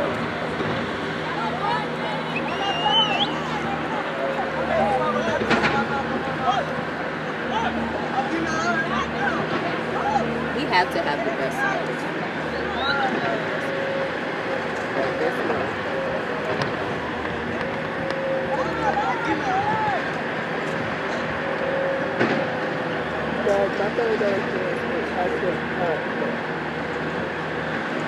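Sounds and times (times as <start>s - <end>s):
steady background noise: 0.0s - 28.0s
distant players shouting: 1.3s - 23.5s.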